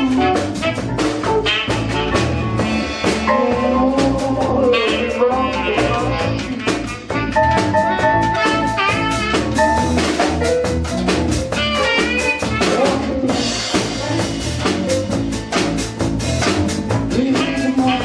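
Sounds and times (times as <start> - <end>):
drum kit beat: 0.0 - 18.0
electric guitar lead notes: 0.0 - 18.0.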